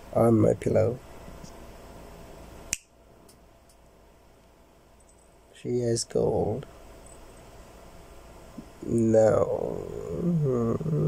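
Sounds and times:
low background hum: 0:00.0 - 0:11.0
sharp click: 0:02.7 - 0:02.9.

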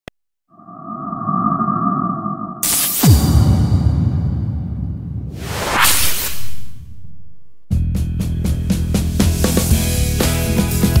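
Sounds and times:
loud electronic hit: 0:02.4 - 0:06.0.

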